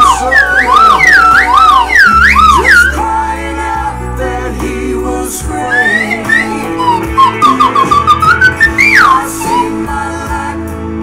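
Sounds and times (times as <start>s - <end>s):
slide whistle warbling: 0.0s - 3.1s, 5.7s - 9.8s
country-rock song: 0.0s - 11.0s.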